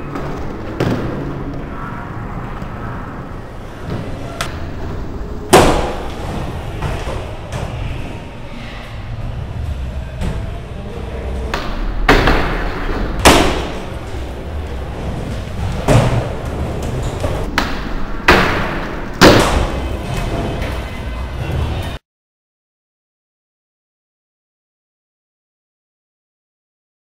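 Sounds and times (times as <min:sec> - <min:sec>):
skateboard decks hitting floor: 0:00.0 - 0:01.4, 0:05.5 - 0:07.9, 0:11.4 - 0:22.0
skateboard wheels rolling: 0:00.0 - 0:08.4, 0:09.1 - 0:22.0.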